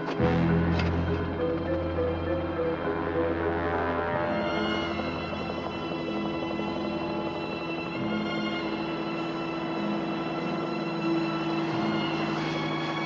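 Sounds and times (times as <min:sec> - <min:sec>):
pulsing low note: 0:00.2 - 0:07.3
sustained held tones: 0:00.2 - 0:12.7.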